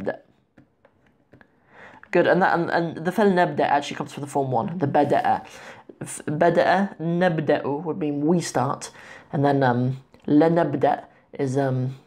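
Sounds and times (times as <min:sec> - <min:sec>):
person speaking: 0:00.0 - 0:00.7, 0:01.3 - 0:12.0
soft breath in: 0:01.6 - 0:02.1.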